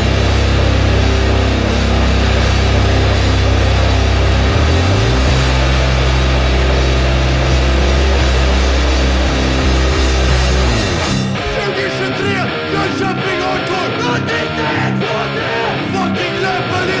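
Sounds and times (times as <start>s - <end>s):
hardcore punk band playing: 0.0s - 17.0s.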